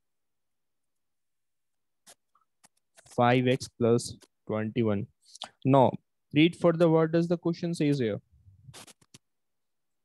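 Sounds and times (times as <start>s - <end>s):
stylus scratching on screen: 2.0s - 4.4s, 8.5s - 9.2s.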